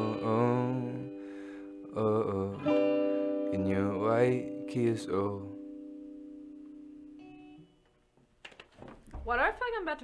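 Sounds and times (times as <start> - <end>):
electric guitar chord ringing: 0.0 - 7.8.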